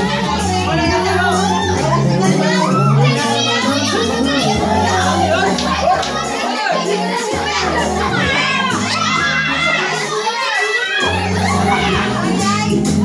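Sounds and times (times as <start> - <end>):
music with steady bass line: 0.0 - 10.3, 11.0 - 13.0
group chattering and calling out: 0.0 - 13.0.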